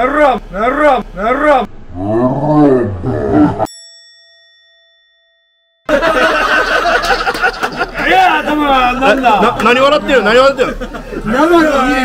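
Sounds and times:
bell ding: 3.7 - 5.9.

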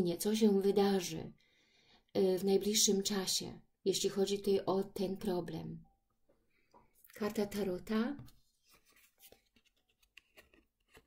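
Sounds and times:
card rustling and ticking: 8.2 - 11.0.

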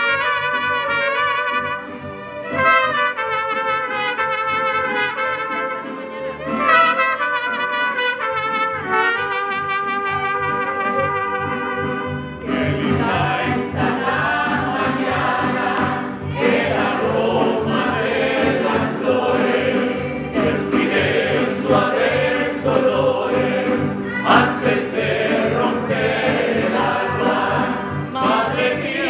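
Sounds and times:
strummed guitar rhythm: 0.9 - 29.0
men and women singing together: 12.4 - 29.0.

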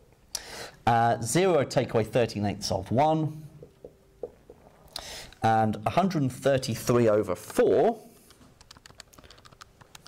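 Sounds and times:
calculator keys clicking: 8.6 - 10.0.

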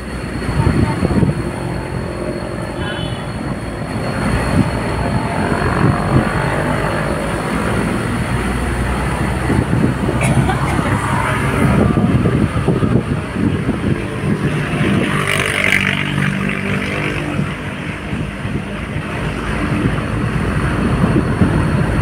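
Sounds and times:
vehicle engine and road rumble: 0.0 - 22.0.

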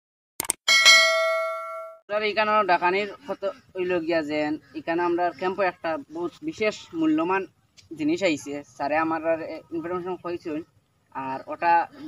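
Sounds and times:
quick clicks: 0.4 - 0.6
notification bell ding: 0.7 - 2.0.

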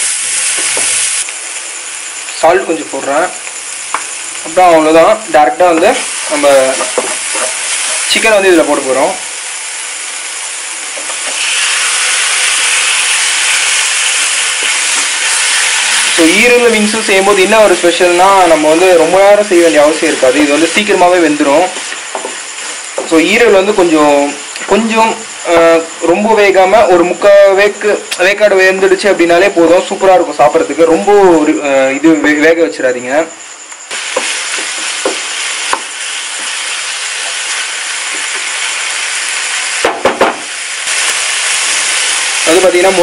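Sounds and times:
chicken sizzling in a pan: 0.0 - 26.4, 33.9 - 43.0.

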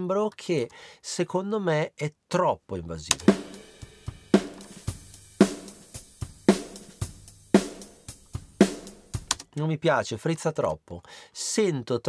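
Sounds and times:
distorted hi-hat: 3.1 - 9.4
snare drum hits: 3.2 - 7.0.

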